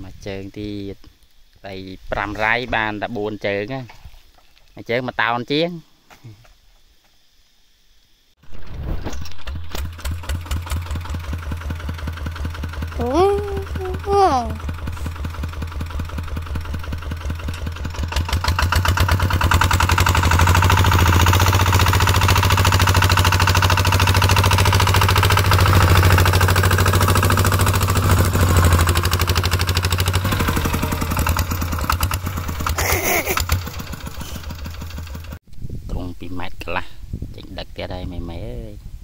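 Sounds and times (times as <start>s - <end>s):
diesel tractor engine putter: 9.0s - 35.4s.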